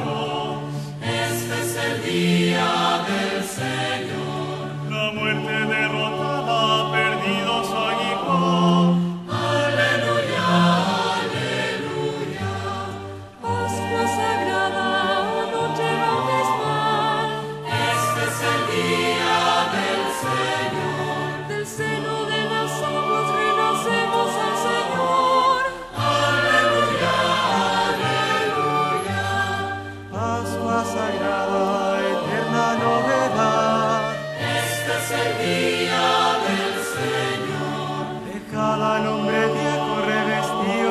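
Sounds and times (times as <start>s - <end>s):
choir singing a chant: 0.0s - 40.9s.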